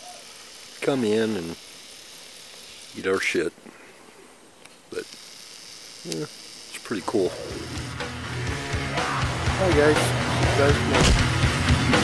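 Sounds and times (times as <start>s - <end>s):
faint outdoor hiss: 0.0s - 8.5s.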